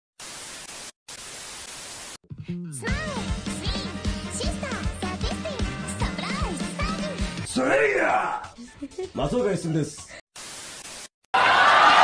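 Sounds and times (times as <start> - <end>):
television static hiss: 0.2 - 2.2, 10.4 - 11.1.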